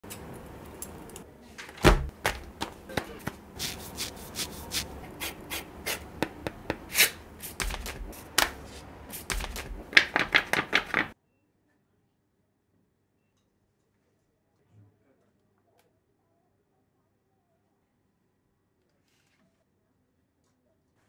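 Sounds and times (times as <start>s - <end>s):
cardboard and paper rubbing: 2.0s - 11.2s.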